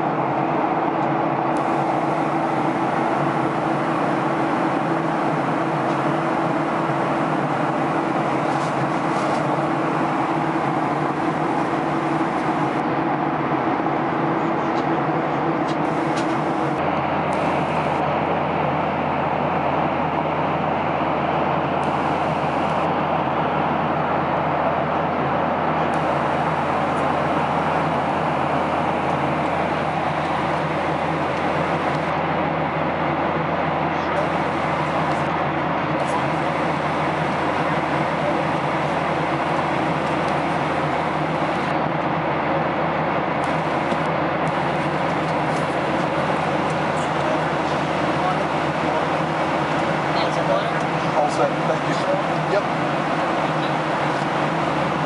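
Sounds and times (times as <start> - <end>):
airliner cabin engine rush: 0.0 - 55.0.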